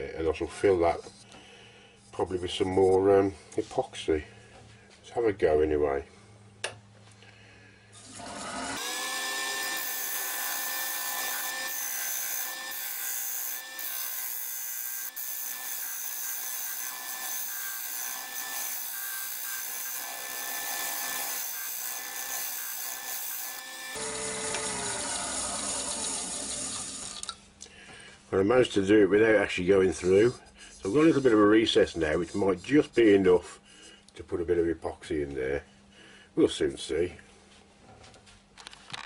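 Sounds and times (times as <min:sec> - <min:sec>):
turning tool scraping wood: 0:29.9 - 0:33.2.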